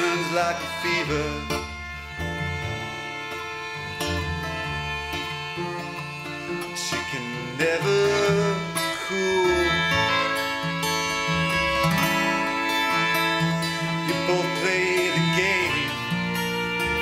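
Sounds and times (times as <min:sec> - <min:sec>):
strummed acoustic guitar: 0:00.0 - 0:17.0
violin: 0:00.0 - 0:17.0
upright bass line: 0:00.6 - 0:06.6, 0:08.0 - 0:10.3, 0:11.0 - 0:14.5.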